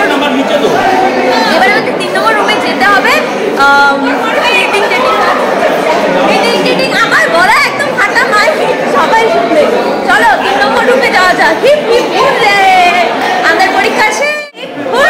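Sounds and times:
overlapping chatter in echoing hall: 0.0s - 15.0s.

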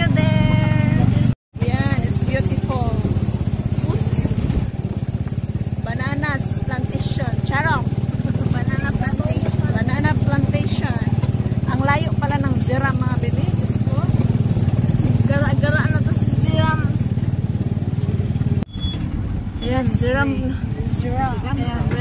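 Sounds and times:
people talking: 0.0s - 4.6s, 5.8s - 17.0s, 19.6s - 22.0s
vehicle engine droning: 0.0s - 22.0s.

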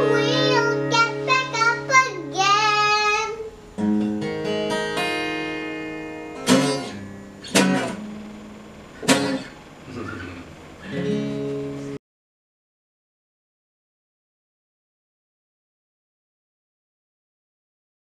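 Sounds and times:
girl singing: 0.0s - 3.6s
strummed acoustic guitar: 0.0s - 12.0s.

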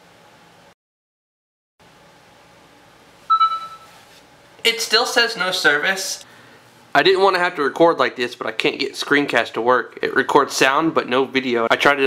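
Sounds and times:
phone notification chime: 3.3s - 3.9s.

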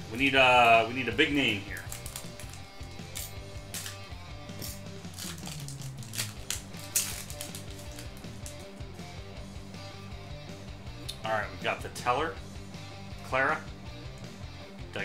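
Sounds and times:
soft background music: 0.0s - 15.0s
foil wrapper crinkling and tearing: 1.7s - 2.7s, 4.6s - 8.8s.

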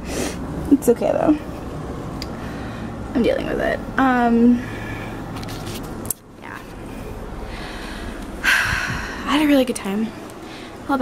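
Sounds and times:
room hum and hiss: 0.0s - 11.0s.

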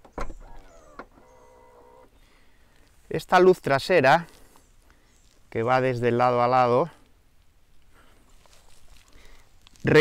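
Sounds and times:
liftgate latching shut with thud: 0.0s - 1.3s.

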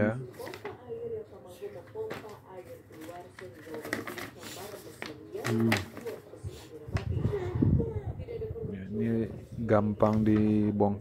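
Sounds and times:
paper crackling: 0.3s - 0.8s, 1.8s - 7.4s.

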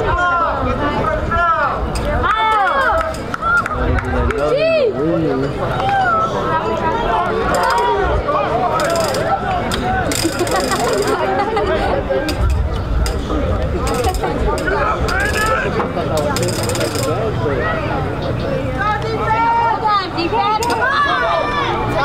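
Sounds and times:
chatter of overlapping voices: 0.0s - 22.0s.

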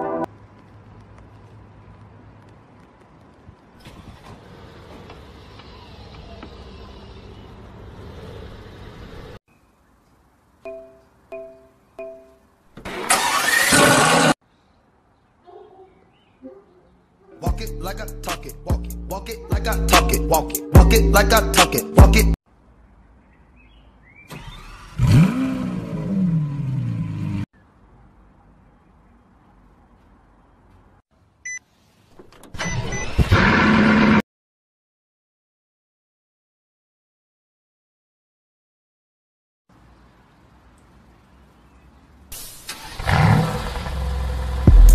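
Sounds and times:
car engine starting and humming: 3.8s - 9.4s, 12.9s - 14.4s, 24.3s - 27.5s, 42.4s - 44.9s
sports car engine revving: 24.7s - 27.4s, 42.9s - 44.9s.

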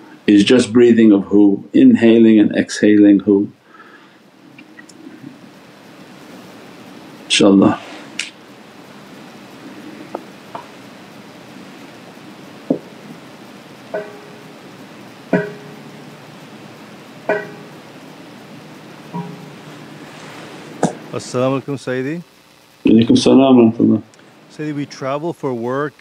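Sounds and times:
steady low hiss: 0.0s - 26.0s
plucked string notes: 13.9s - 14.6s, 15.3s - 16.3s, 17.2s - 17.9s, 19.1s - 20.0s.

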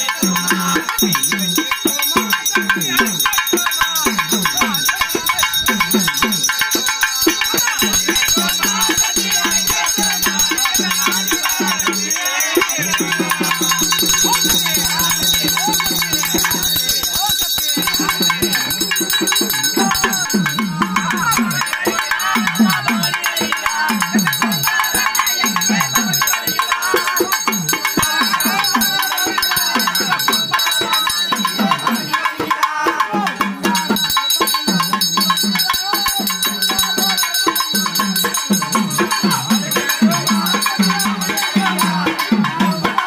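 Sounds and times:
fast drum rhythm: 0.0s - 43.0s
ringing metallic percussion: 0.0s - 43.0s.

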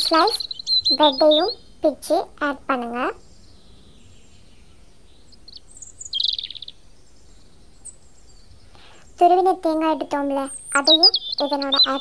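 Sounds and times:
small bird chirping and trilling: 0.0s - 12.0s.

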